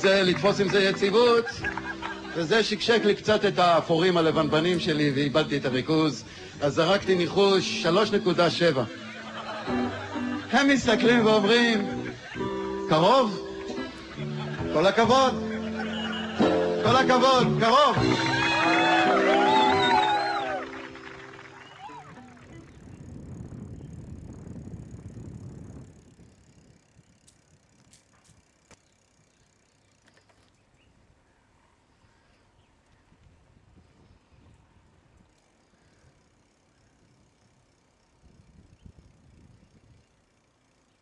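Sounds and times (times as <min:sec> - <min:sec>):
bicycle rolling noise: 0:00.0 - 0:41.0
song playing: 0:07.1 - 0:22.5
low wind rumble: 0:17.8 - 0:29.7, 0:30.6 - 0:40.9.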